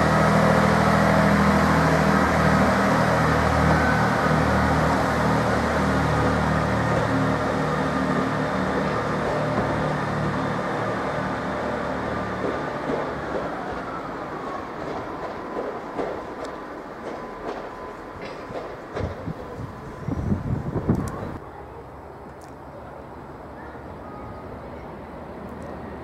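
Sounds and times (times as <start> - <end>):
diesel train engines humming: 0.0 - 26.0
wheels clicking over rail joints: 14.8 - 19.6.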